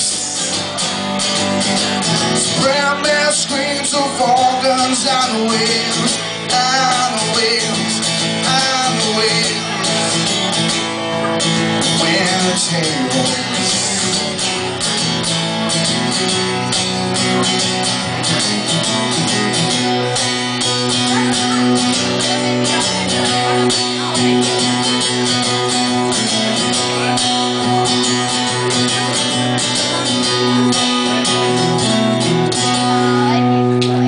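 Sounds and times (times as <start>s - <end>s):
acoustic guitar strumming chords: 0.0s - 34.0s.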